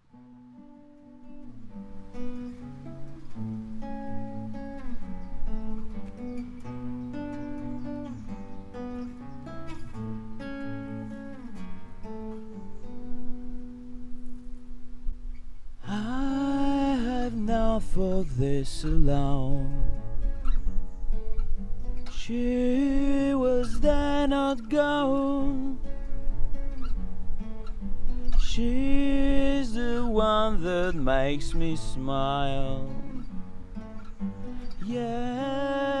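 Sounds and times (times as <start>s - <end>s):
acoustic guitars picking notes: 0.0s - 36.0s
person singing: 15.8s - 20.0s, 22.1s - 26.0s, 28.4s - 33.3s, 34.6s - 36.0s.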